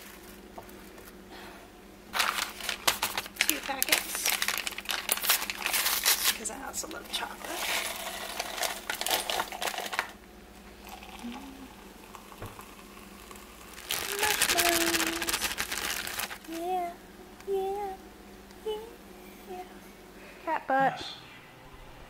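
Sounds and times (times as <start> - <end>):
foil packet crinkling: 0.0 - 1.2, 2.1 - 10.2, 12.7 - 16.7
plastic bag crinkling: 2.1 - 10.2, 12.7 - 16.8.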